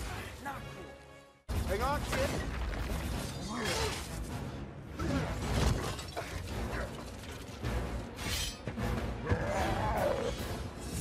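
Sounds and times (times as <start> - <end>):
film music score: 0.0 - 11.0.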